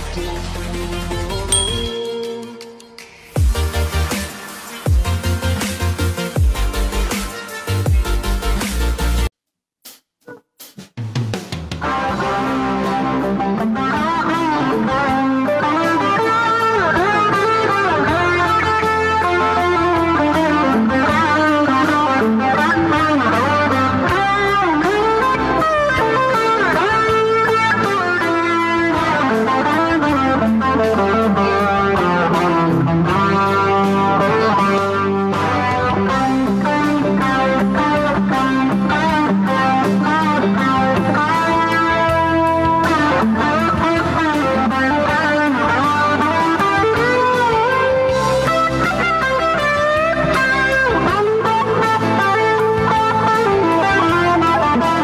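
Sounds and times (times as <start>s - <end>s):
lead guitar with bent notes: 0.0s - 4.2s, 11.8s - 55.0s.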